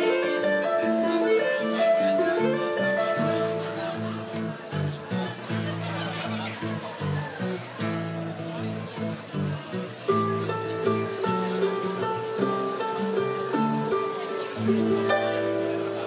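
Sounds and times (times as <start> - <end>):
harp notes: 0.0 - 4.7
acoustic guitar plucking: 0.0 - 16.0
sustained string melody: 0.0 - 16.0.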